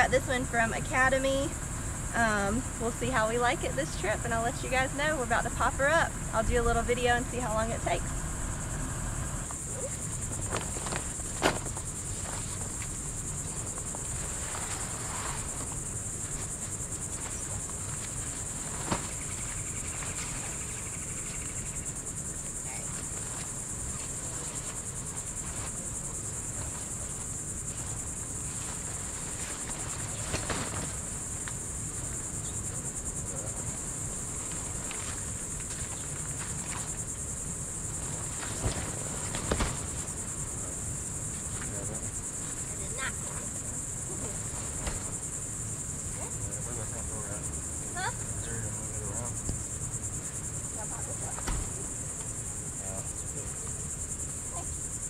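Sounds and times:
high-pitched insect chorus: 0.0s - 55.0s
tent frame knocks: 10.3s - 12.9s, 38.4s - 40.2s, 44.6s - 45.2s, 51.4s - 51.8s.

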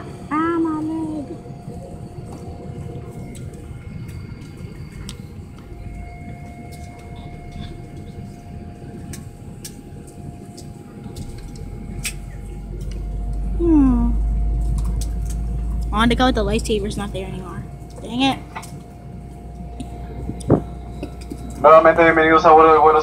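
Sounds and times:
airliner cabin rumble: 0.0s - 23.0s
faint steady whine: 0.0s - 23.0s.

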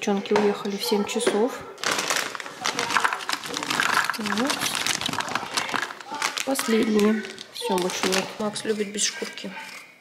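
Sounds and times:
plastic snack bag crinkling: 1.8s - 9.9s.

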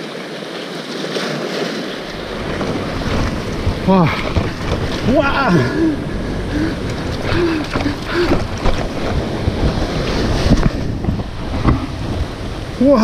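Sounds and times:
sea washing against rocks: 0.0s - 13.0s
wind buffeting microphone: 2.0s - 13.0s.

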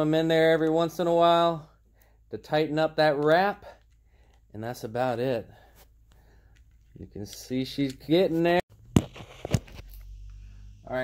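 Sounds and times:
man speaking: 4.5s - 5.6s, 7.0s - 8.6s.

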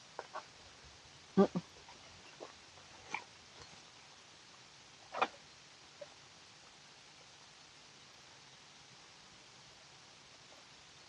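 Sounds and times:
mouth noises: 1.4s - 3.3s.

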